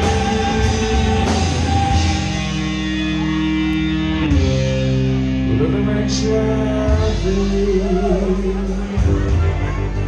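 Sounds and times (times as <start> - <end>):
person singing: 0.0 - 3.2, 5.3 - 10.0
rock band playing: 0.0 - 10.0.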